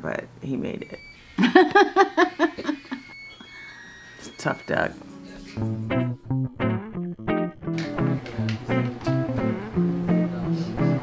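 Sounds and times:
woman laughing: 0:01.4 - 0:03.2.

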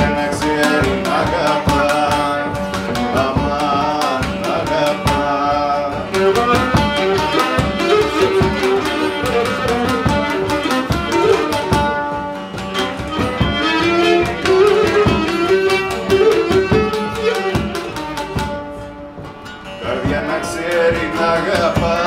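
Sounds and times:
person singing: 0:00.0 - 0:09.0, 0:19.8 - 0:22.0
drum beat: 0:00.0 - 0:22.0
strummed lute: 0:00.0 - 0:22.0
bowed lyra melody: 0:01.0 - 0:20.0.

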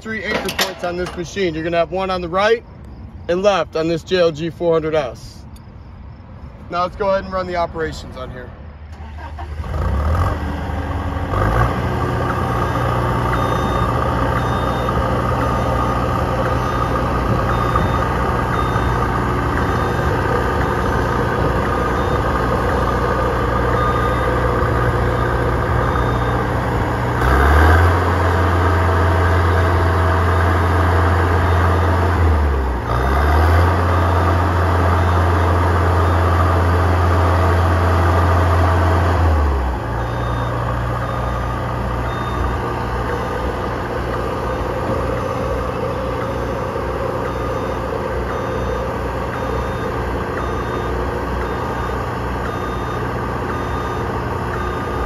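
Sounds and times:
boom lift engine running: 0:00.0 - 0:01.9, 0:10.4 - 0:55.0.

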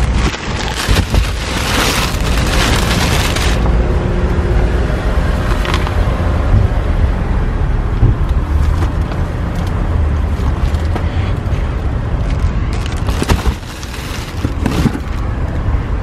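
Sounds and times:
car driving rumble: 0:00.0 - 0:16.0.

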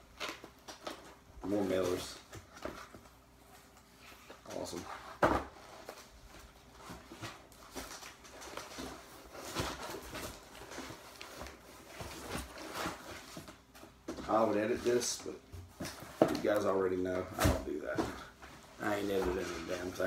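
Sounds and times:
cardboard and mailers rustling: 0:00.0 - 0:20.0.

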